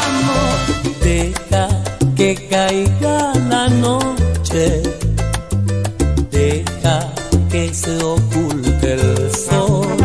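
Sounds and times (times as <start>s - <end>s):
instrumental salsa music: 0.0s - 10.0s.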